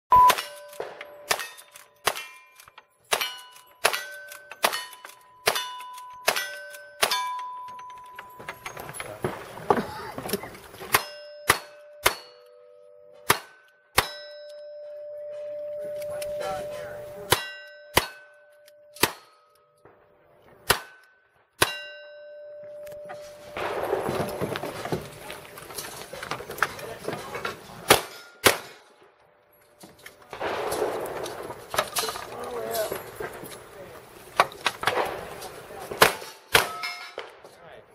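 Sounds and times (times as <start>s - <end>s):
ringing ding of steel target: 0.1s - 2.4s, 11.0s - 19.8s, 21.6s - 23.6s
revolver gunshots: 23.6s - 24.9s, 27.8s - 29.0s, 30.3s - 32.1s, 34.8s - 37.4s
rifle gunshots: 23.6s - 24.9s, 27.9s - 28.9s, 30.3s - 32.1s, 34.8s - 37.4s.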